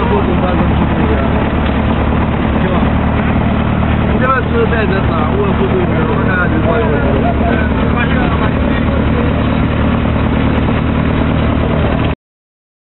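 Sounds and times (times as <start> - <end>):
engine running low drone: 0.0 - 12.2.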